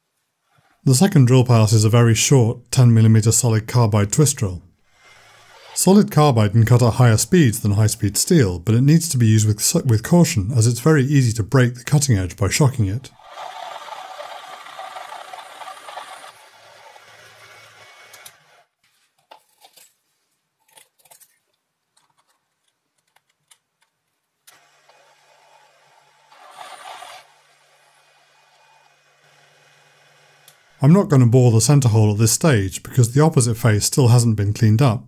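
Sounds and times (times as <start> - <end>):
lathe drilling steel: 13.2 - 18.7, 24.6 - 30.8.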